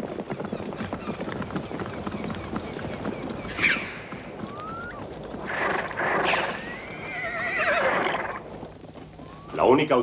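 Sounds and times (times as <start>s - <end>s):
horse whinnying: 3.6s - 8.4s.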